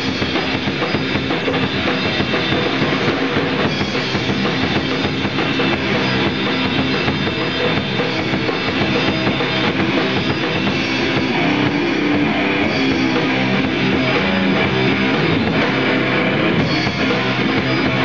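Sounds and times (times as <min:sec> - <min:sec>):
drum kit: 0:00.0 - 0:18.0
electric guitar: 0:00.0 - 0:18.0.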